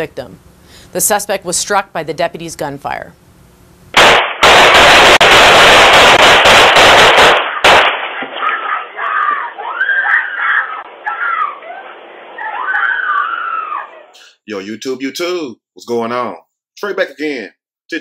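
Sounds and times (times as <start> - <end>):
rapid gunshots: 4.0 - 8.8
people screaming: 8.1 - 14.2.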